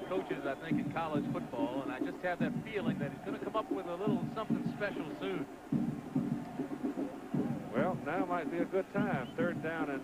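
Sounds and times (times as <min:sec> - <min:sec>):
man commentating: 0:00.0 - 0:05.5.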